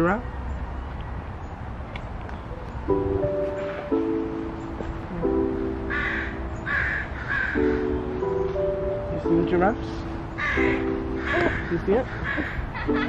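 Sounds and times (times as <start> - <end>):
music of held chords: 2.9 - 13.0
harsh caw-like calls: 5.9 - 8.0, 10.4 - 13.0.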